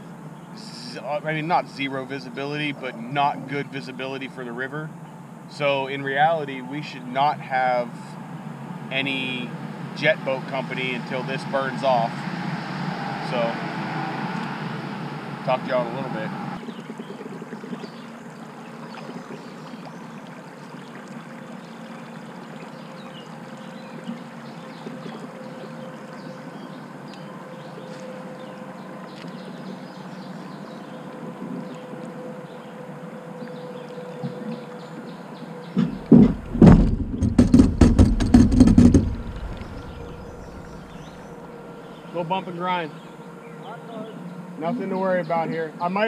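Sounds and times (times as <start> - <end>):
water under hull: 5.6 - 43.6
electric outboard motor hum: 7.8 - 45.7
hull knocking and scraping on rocks: 35.8 - 41.2.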